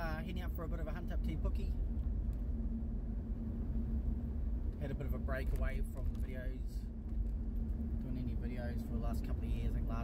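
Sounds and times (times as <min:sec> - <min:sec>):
low even hum: 0:00.0 - 0:10.0
vehicle engine and road rumble: 0:00.0 - 0:10.0.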